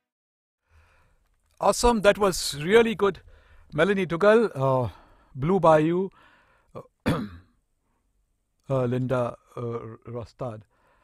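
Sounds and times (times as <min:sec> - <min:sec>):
man clearing throat with cough: 0:06.8 - 0:07.6.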